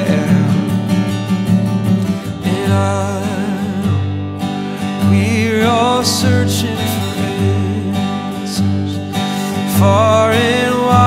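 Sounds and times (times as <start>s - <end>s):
acoustic guitar strumming: 0.0s - 11.0s
person singing worship song: 2.4s - 4.0s, 5.0s - 11.0s.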